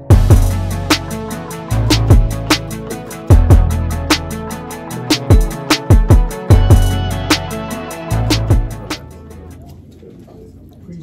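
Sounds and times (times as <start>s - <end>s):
background music: 0.0s - 9.9s.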